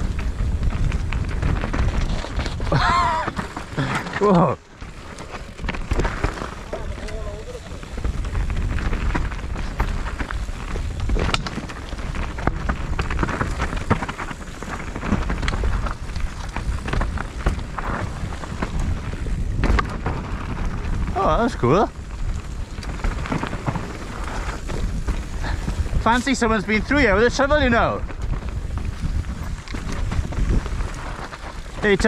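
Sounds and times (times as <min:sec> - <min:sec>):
bike frame and chain rattling: 0:00.0 - 0:32.0
tyres on dirt: 0:00.0 - 0:32.0
wind buffeting microphone: 0:00.0 - 0:32.0.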